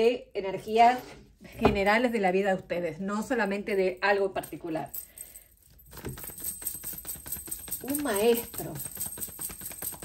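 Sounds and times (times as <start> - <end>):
cards being shuffled: 5.7 - 10.0.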